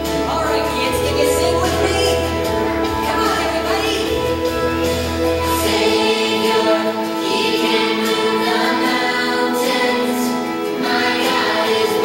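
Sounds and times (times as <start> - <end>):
choir singing with instruments: 0.0 - 12.0.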